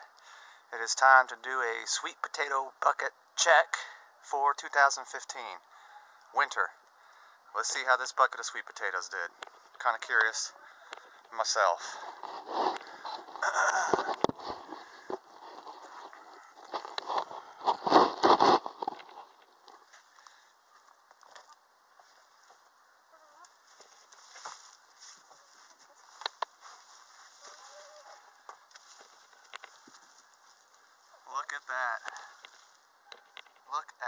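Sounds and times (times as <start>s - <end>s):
faint clicks and rustles: 8.8s - 33.7s
camera handling rustling: 12.1s - 19.8s.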